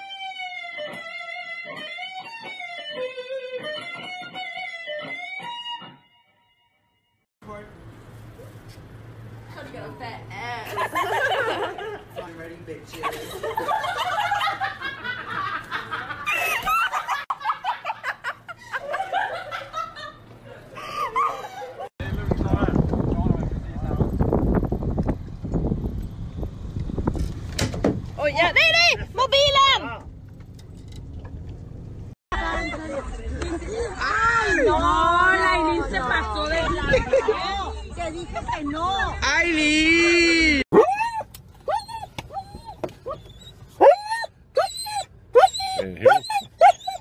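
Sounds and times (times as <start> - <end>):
dog whining and yelping: 40.7 - 47.0.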